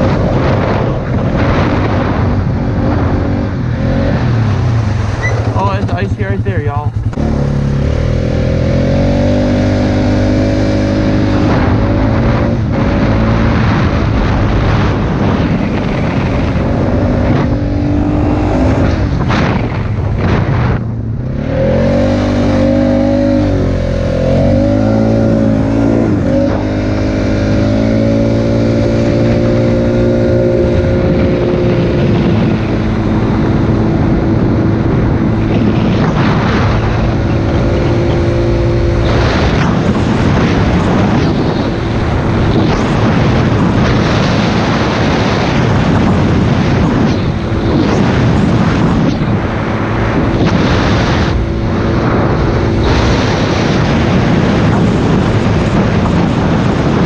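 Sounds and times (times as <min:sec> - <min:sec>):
quad bike engine revving: 0:00.0 - 0:57.0.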